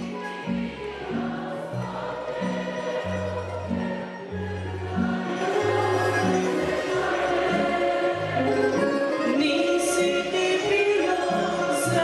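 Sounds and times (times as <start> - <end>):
voices singing: 0.0 - 12.0
plucked string band playing: 0.3 - 12.0.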